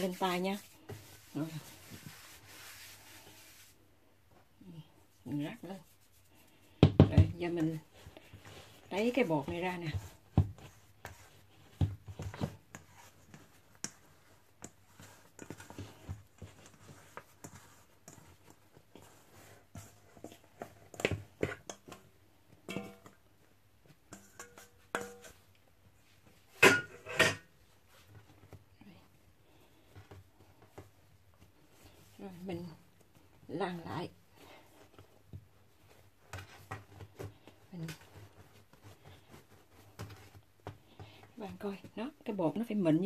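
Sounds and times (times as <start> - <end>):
hands working dough in metal bowl: 0.0 - 43.0.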